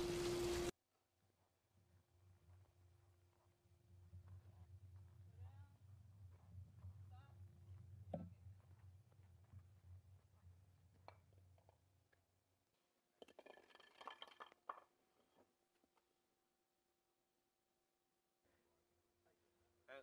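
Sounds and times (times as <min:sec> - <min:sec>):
faint low hum: 0:01.8 - 0:12.0.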